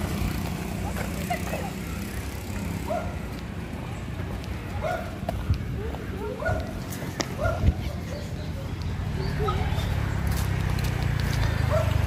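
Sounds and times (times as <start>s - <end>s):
rustle of walking: 9.7s - 12.0s.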